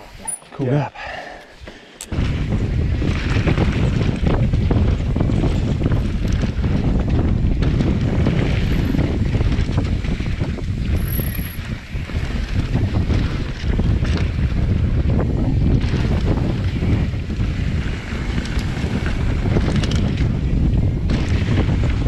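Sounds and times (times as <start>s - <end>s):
bike tyre noise: 0.0s - 22.0s
bike rattles and knocks: 1.6s - 22.0s
wind buffeting microphone: 1.6s - 22.0s.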